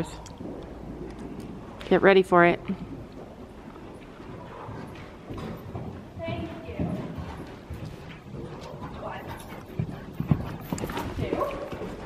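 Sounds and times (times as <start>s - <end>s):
horse hooves cantering on sand: 0.0s - 12.0s.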